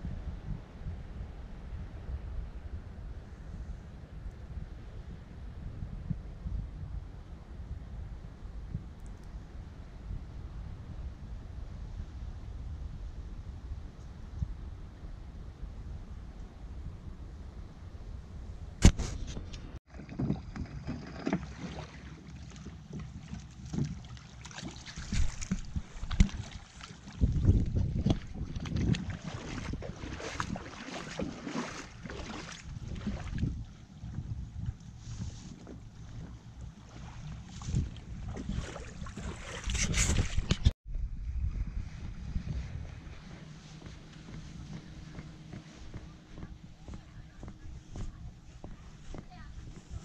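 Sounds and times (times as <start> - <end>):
wind gusting on microphone: 0.0 - 20.6, 24.8 - 50.0
dinghy knocks and scrapes: 18.8 - 26.8.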